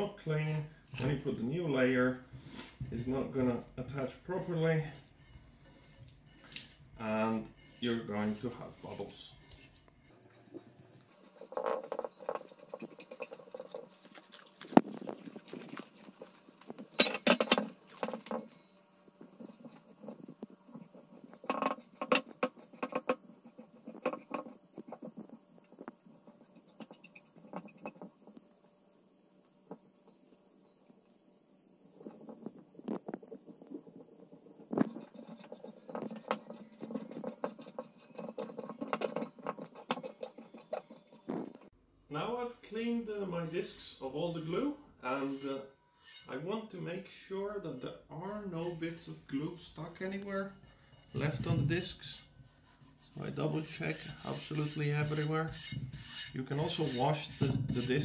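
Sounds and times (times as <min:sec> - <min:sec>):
fingers scraping glue off metal disc: 0:05.8 - 0:28.5, 0:32.0 - 0:41.7, 0:52.6 - 0:58.0.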